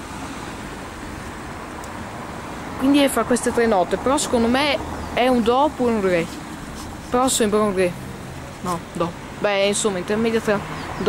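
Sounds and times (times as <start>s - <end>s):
outdoor hiss and rumble: 0.0s - 11.0s.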